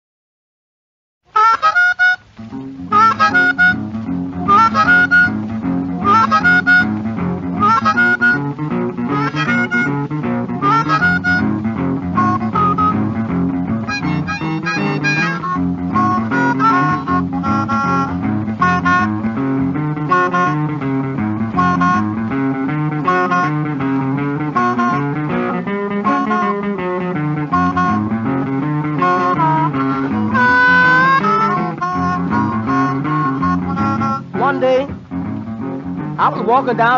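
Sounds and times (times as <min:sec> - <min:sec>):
blues harmonica riff: 0:01.3 - 0:36.9
boogie-woogie guitar and bass: 0:01.4 - 0:36.9.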